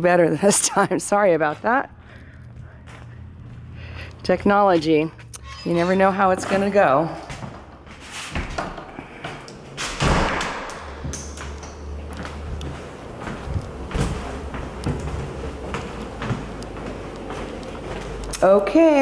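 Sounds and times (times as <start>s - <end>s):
door shutting with thud: 9.8s - 11.5s
knocks indoors: 9.9s - 11.6s.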